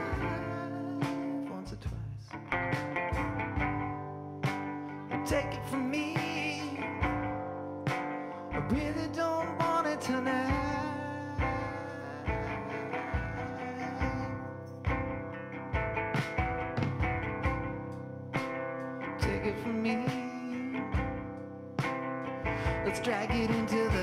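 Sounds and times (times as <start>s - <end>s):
bass drum steady beat: 0.0s - 21.9s, 22.5s - 24.0s
drum kit: 0.0s - 24.0s
ukulele-like stringed instrument: 10.4s - 21.1s.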